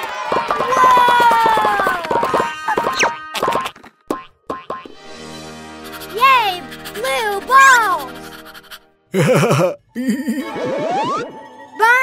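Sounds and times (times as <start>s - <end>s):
cartoon springy sounds: 0.3s - 5.0s, 10.4s - 11.4s.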